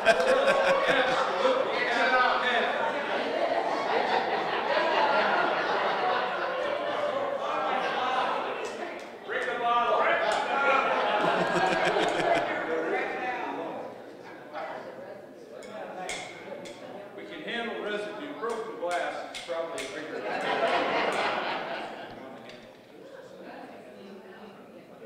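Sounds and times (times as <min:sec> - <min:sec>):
crowd talking in a hall: 0:00.0 - 0:25.0.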